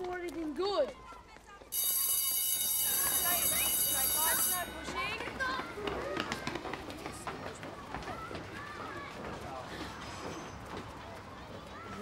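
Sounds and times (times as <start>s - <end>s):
children's footsteps on brick steps: 0.0s - 12.0s
children's voices: 2.9s - 12.0s.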